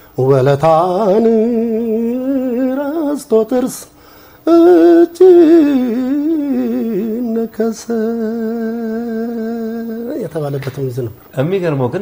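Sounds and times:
man singing unaccompanied: 0:00.1 - 0:11.1.

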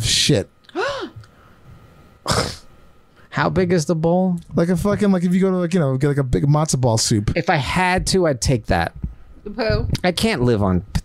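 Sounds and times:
person huffing: 0:00.7 - 0:01.2.

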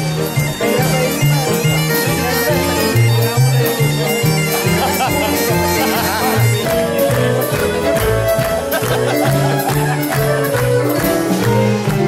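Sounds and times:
bagpipes playing lively tune: 0:00.0 - 0:12.0
rhythmic bass line: 0:00.0 - 0:12.0.

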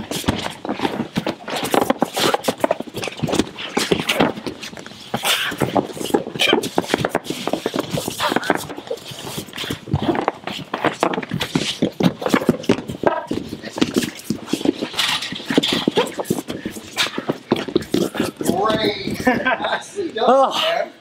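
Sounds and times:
bodies thudding against wall pads: 0:00.0 - 0:19.6
men grunting and breathing hard: 0:05.0 - 0:11.0, 0:12.6 - 0:21.0.

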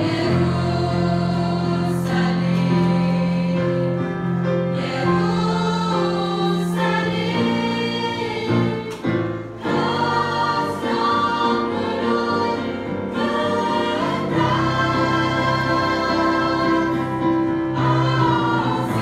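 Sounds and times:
choir singing held chords: 0:00.0 - 0:19.0.

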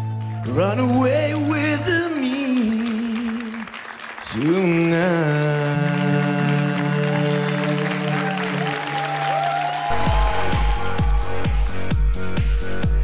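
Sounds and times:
applause: 0:00.0 - 0:11.8
man singing long note: 0:04.3 - 0:09.0
electronic dance jingle: 0:09.9 - 0:13.0.

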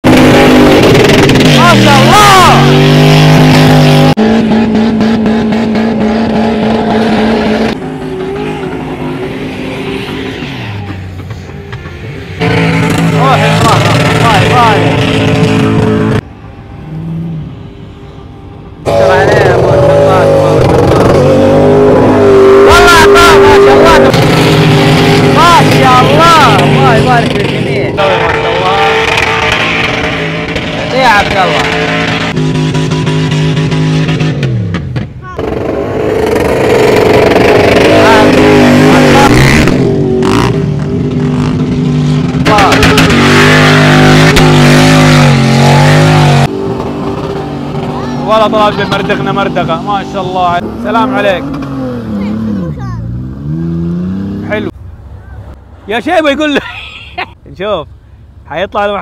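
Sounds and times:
truck engines revving: 0:00.0 - 0:59.0
people shouting: 0:08.0 - 0:11.0.

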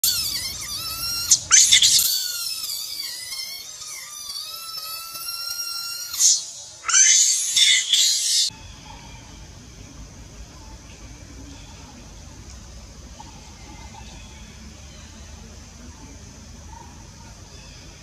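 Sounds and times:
baby monkey screaming: 0:00.0 - 0:09.2.

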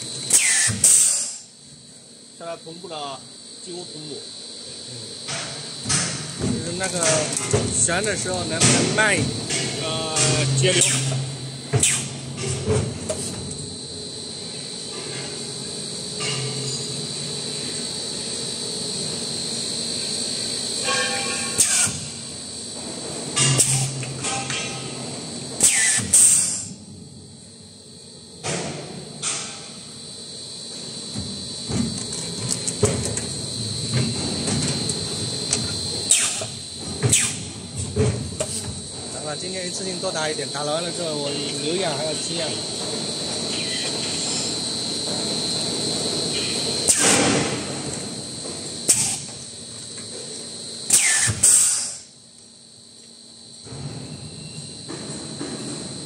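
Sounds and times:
machine high-pitched whine: 0:00.0 - 0:56.0
sharp air hisses: 0:00.3 - 0:01.5, 0:25.6 - 0:26.7, 0:36.1 - 0:37.5, 0:48.9 - 0:49.3, 0:50.9 - 0:52.1.

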